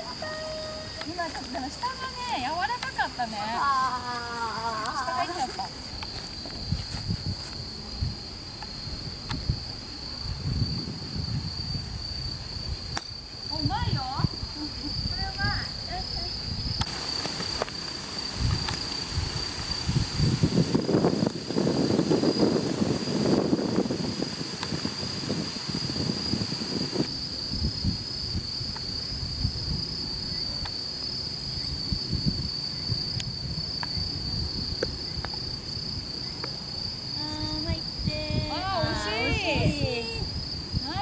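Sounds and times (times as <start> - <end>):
insects trilling: 0.0 - 41.0.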